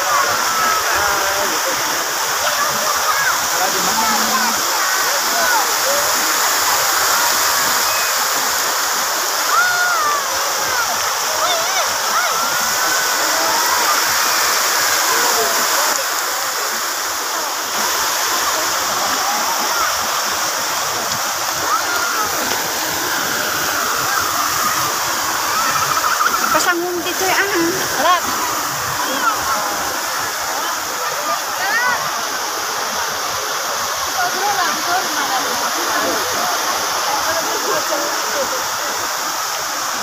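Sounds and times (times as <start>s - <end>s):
crowd chatter: 0.0s - 40.0s
fountain water rushing and splashing: 0.0s - 40.0s.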